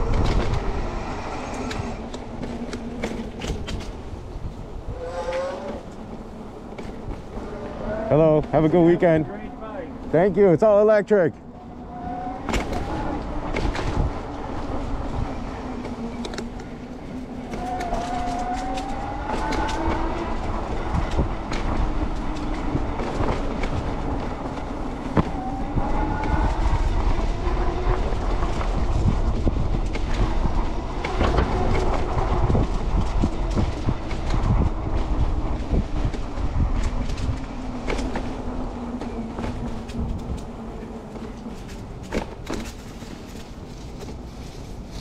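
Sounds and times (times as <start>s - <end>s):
electric bike motor whine: 0.0s - 8.4s, 11.5s - 42.0s
low rumble of wind and tyres: 0.0s - 45.0s.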